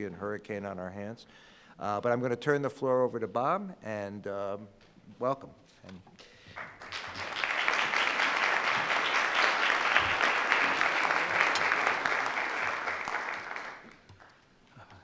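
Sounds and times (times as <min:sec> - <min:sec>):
audience applauding: 0:06.6 - 0:14.5.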